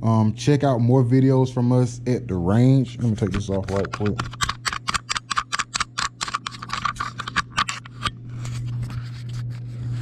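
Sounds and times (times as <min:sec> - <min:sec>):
fingers handling camera: 0:03.2 - 0:09.4.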